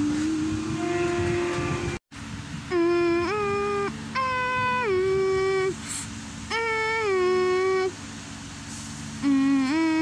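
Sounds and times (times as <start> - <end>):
person humming held notes: 0.0 - 2.0, 2.7 - 8.0, 9.2 - 10.0.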